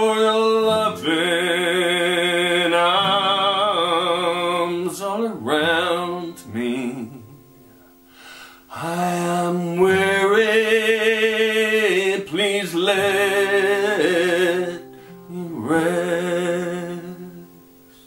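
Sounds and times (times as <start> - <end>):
man singing with vibrato: 0.0 - 7.5, 8.7 - 18.0
strummed acoustic guitar: 0.0 - 18.0.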